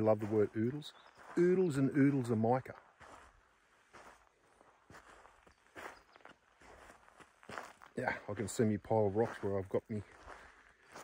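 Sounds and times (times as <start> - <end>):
footsteps on pebbly ground: 0.0 - 11.0.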